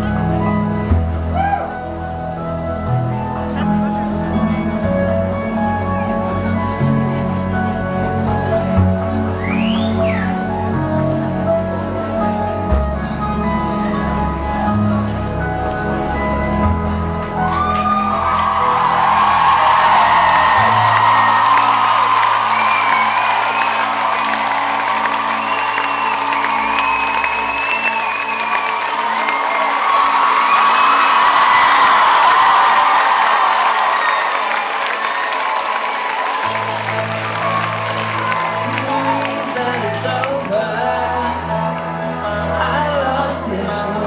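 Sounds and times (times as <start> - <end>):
crowd cheering and whistling: 9.3 - 10.6, 17.4 - 41.5.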